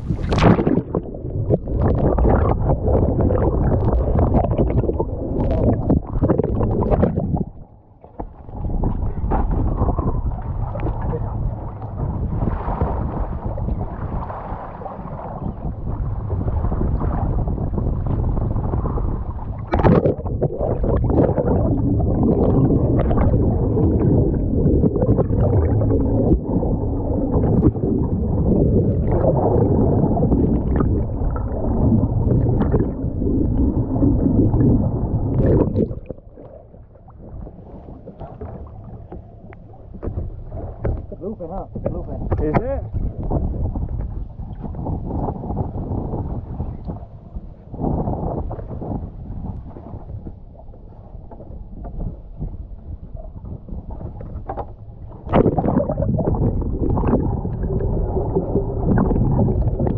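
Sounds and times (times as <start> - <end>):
water sloshing underwater: 0.0 - 59.9.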